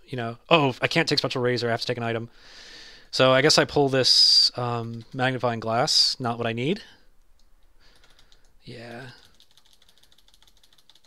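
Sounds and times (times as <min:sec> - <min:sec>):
keyboard typing clicks: 0:09.2 - 0:11.0.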